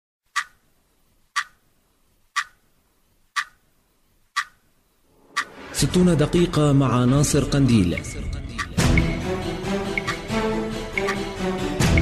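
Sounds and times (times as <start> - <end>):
clock ticking: 0.3 - 0.7, 1.3 - 1.6, 2.3 - 2.6, 3.3 - 3.6, 4.3 - 4.6, 5.3 - 5.6, 7.9 - 9.2, 9.9 - 10.3, 10.9 - 11.3.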